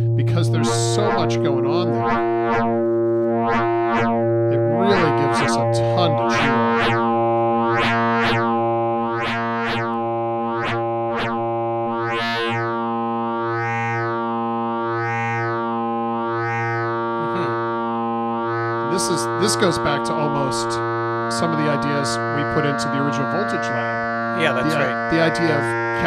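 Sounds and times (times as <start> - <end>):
held synthesizer note sweeping: 0.0 - 26.0.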